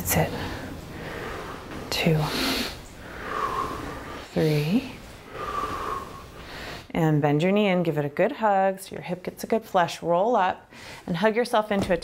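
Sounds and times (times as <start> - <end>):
person breathing: 0.3 - 6.9.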